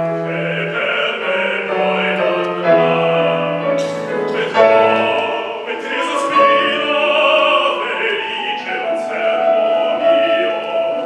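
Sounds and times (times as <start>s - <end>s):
opera singing voices: 0.0s - 11.0s
orchestral accompaniment: 0.0s - 11.0s.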